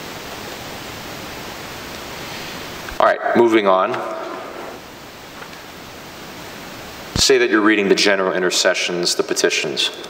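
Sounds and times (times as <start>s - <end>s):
room noise hiss in church: 0.0s - 10.0s
voice echo: 2.9s - 4.9s, 7.2s - 10.0s.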